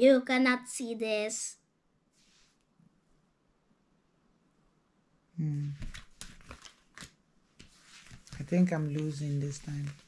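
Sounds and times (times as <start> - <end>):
cardboard cards snapping and rustling: 5.8 - 10.0.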